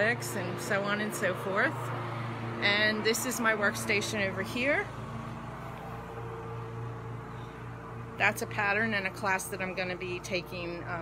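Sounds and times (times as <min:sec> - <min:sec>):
low mechanical hum: 0:00.0 - 0:11.0.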